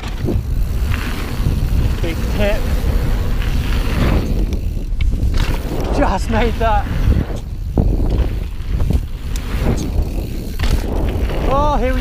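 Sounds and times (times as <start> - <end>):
bike knocking and rattling: 0.0 - 12.0
tyre noise on dirt: 0.0 - 12.0
wind buffeting microphone: 0.0 - 12.0.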